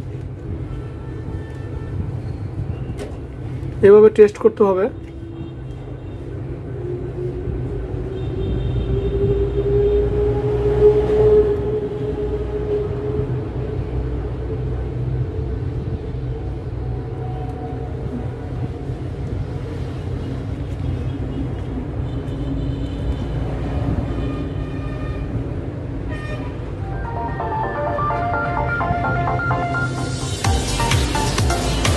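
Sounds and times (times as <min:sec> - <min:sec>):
traffic rumble: 0:00.0 - 0:31.9
music: 0:26.8 - 0:31.9.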